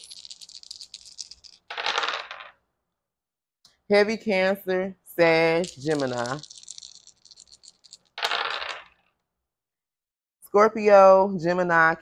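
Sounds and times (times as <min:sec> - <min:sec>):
dice clattering on wooden table: 0:00.0 - 0:02.6, 0:05.6 - 0:09.2
dice rattling in hands: 0:00.0 - 0:02.6, 0:05.4 - 0:09.1.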